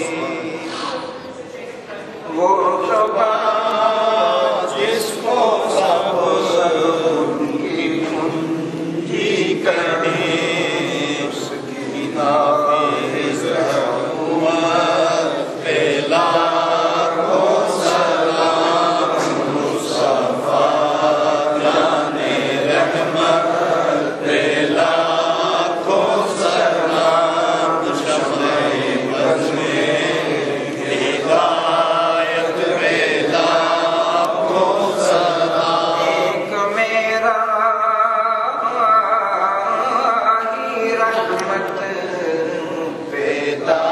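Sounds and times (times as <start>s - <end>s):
men chanting: 0.0s - 1.2s, 2.4s - 43.9s.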